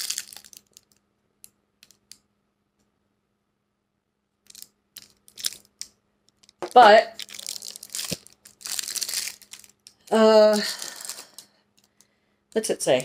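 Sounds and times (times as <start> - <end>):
plastic wrapping crinkling: 0.0 - 1.0, 4.4 - 12.0
faint steady hum: 0.0 - 13.0.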